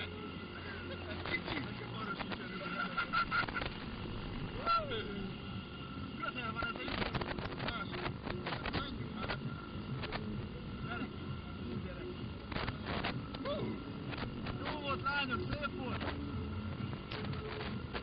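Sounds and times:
steady low rumble: 0:00.0 - 0:18.0
indistinct voices: 0:01.1 - 0:16.2.

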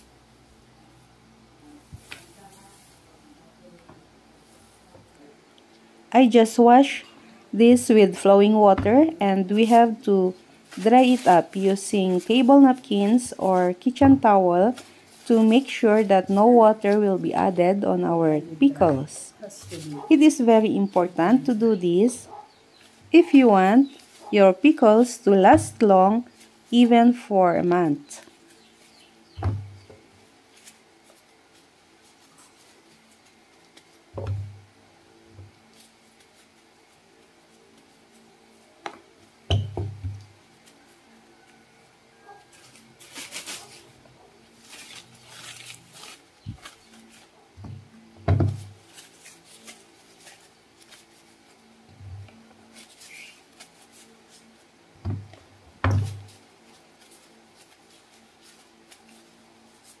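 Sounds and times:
paper rustling: 0:08.1 - 0:17.8, 0:40.6 - 1:00.0
fruit thumping on plastic basin: 0:29.4 - 0:30.1, 0:34.2 - 0:34.7, 0:38.8 - 0:40.3, 0:47.6 - 0:48.8, 0:55.0 - 0:56.3.

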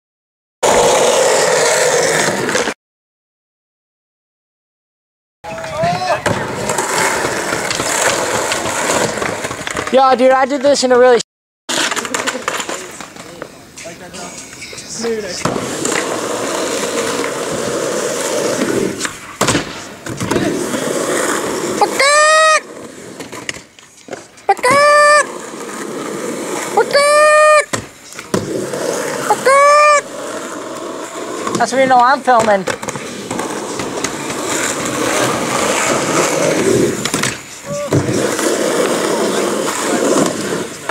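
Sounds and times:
skateboard wheels rolling on asphalt: 0:00.6 - 0:02.8, 0:05.5 - 0:40.9
skateboard clacks: 0:05.5 - 0:11.0, 0:11.7 - 0:25.9, 0:26.6 - 0:40.9.

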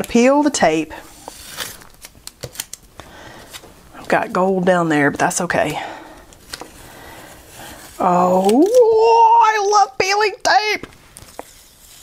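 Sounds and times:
tape peeling off paper: 0:01.3 - 0:02.9, 0:07.4 - 0:08.9.

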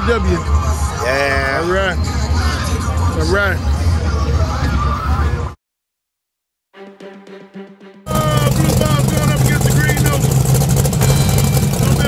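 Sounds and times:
indistinct crowd voices: 0:00.0 - 0:05.6, 0:08.1 - 0:10.3
steady low rumble: 0:08.1 - 0:12.0.

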